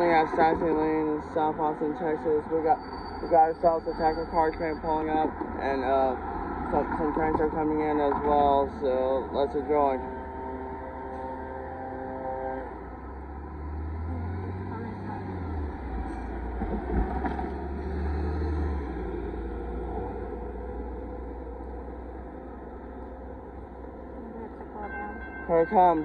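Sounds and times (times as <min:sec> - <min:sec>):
traffic rumbling over crossing: 0:00.0 - 0:26.0.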